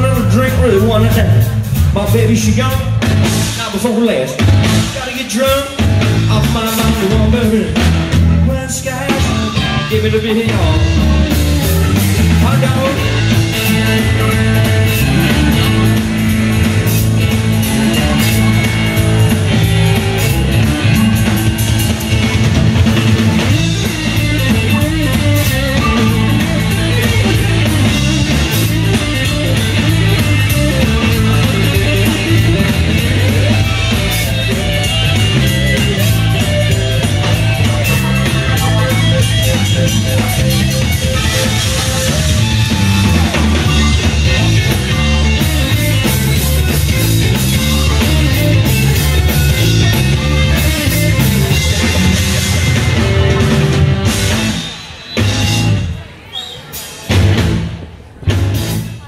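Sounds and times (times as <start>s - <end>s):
electric guitar: 0.0s - 56.2s
bass line: 0.0s - 56.3s, 57.0s - 59.0s
drum kit: 0.0s - 59.0s.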